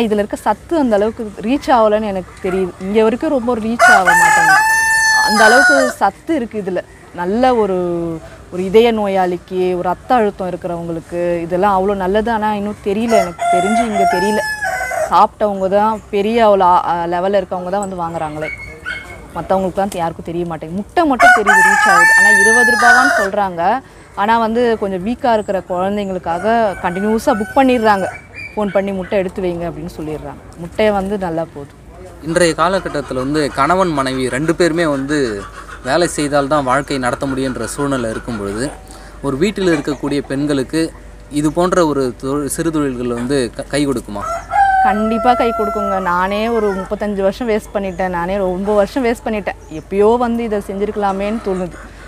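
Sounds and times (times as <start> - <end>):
chickens clucking: 1.1 - 10.3, 11.2 - 52.0
rooster crowing: 3.8 - 6.1, 13.0 - 15.3, 21.1 - 23.4, 26.3 - 28.2, 44.1 - 47.1.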